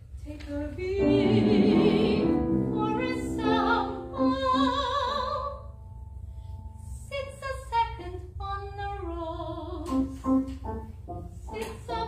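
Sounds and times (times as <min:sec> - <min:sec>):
soprano singing with vibrato: 0:00.2 - 0:05.7, 0:11.5 - 0:12.0.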